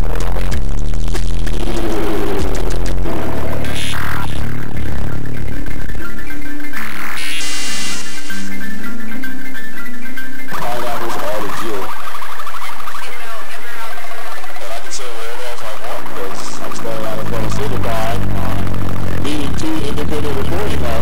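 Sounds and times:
processed electronic music: 0:00.0 - 0:21.0
warbling pitch-bending sound: 0:00.0 - 0:21.0.

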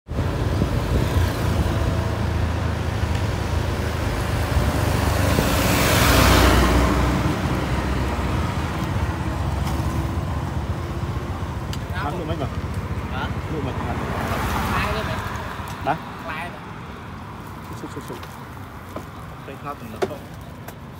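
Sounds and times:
road traffic: 0:00.0 - 0:20.9
truck passing close by: 0:00.1 - 0:11.6.

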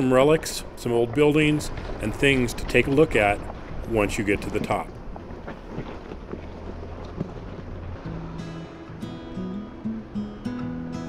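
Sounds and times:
tyres crunching on loose rock: 0:00.0 - 0:08.1
engine running low: 0:00.0 - 0:11.0
background music: 0:07.6 - 0:11.0.

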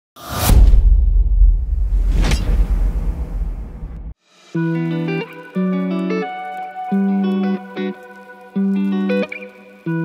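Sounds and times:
whoosh: 0:00.2 - 0:04.7.

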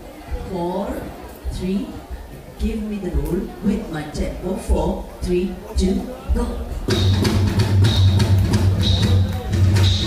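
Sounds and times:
drum kit beat: 0:05.8 - 0:10.0
live pop band playing: 0:06.7 - 0:10.0.

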